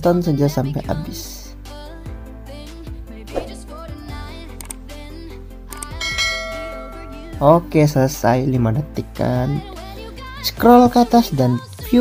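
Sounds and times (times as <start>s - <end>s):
soft music: 0.0s - 12.0s
bell-like ding: 6.0s - 7.5s.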